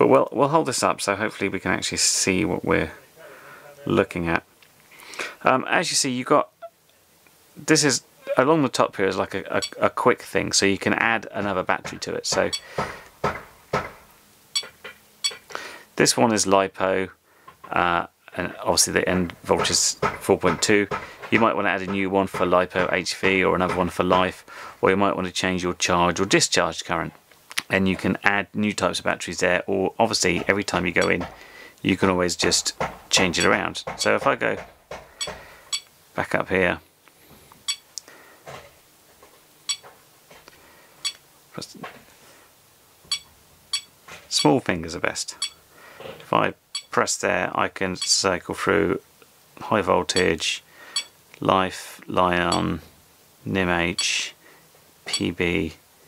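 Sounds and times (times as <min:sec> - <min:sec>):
high electronic beep: 0:14.6 - 0:15.4, 0:43.1 - 0:43.9.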